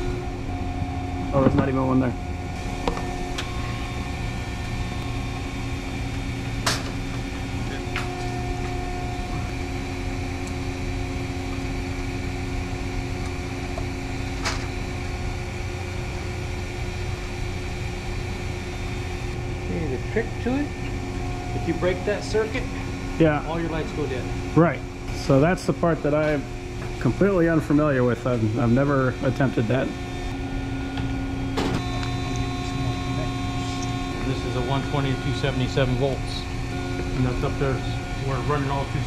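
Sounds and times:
steady mechanical hum: 0.0s - 39.0s.

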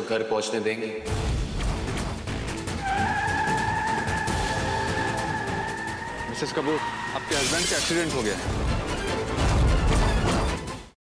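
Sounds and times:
dramatic background music: 1.0s - 11.0s.

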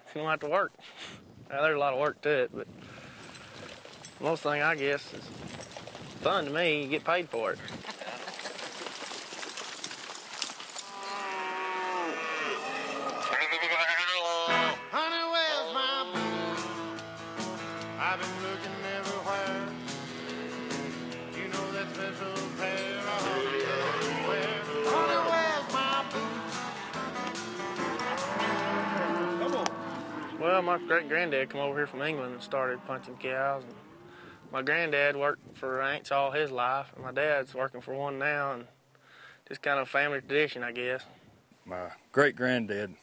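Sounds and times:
cattle bawling: 10.8s - 14.8s, 22.8s - 34.4s.

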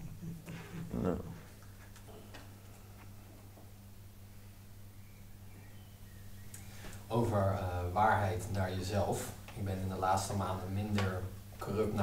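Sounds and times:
steady low hum: 0.0s - 12.0s
man saying a word: 0.9s - 1.5s.

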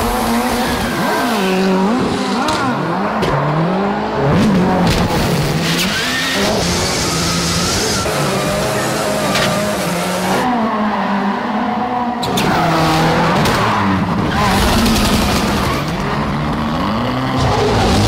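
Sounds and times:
tyres squealing and skidding: 0.0s - 3.7s, 5.6s - 18.0s
rally car engine revving: 0.0s - 18.0s.

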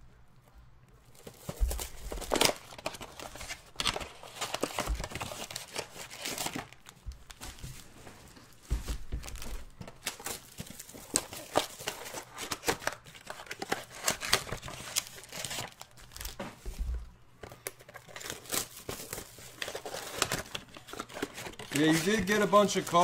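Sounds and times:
cardboard tearing: 1.1s - 6.9s, 9.3s - 16.4s, 17.7s - 23.0s
foil packs crinkling: 1.1s - 16.8s, 17.4s - 23.0s.

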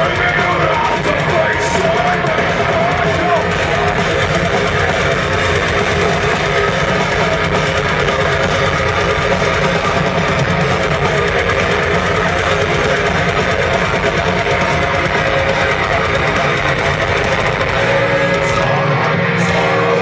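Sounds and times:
heavy metal band playing live: 0.0s - 20.0s.

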